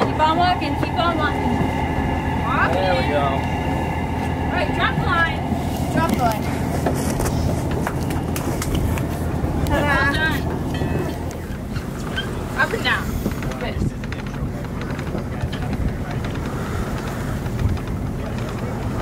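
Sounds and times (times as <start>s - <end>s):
low mechanical drone: 0.0s - 19.0s.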